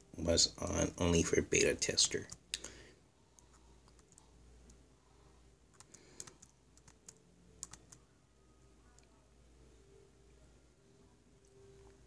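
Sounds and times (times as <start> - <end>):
laptop keys clicking: 3.5 - 4.2, 5.7 - 8.0.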